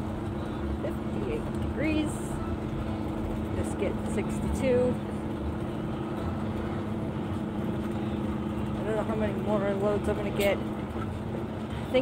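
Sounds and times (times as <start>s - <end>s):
truck diesel engine running: 0.0s - 12.0s.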